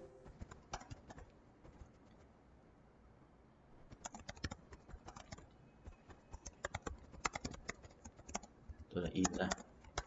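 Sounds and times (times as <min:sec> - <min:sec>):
computer keyboard typing: 0:00.3 - 0:01.9, 0:03.9 - 0:10.0.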